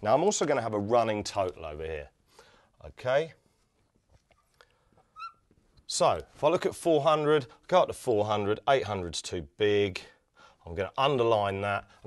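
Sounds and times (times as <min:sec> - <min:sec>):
marker pen squeak: 0:05.1 - 0:05.5.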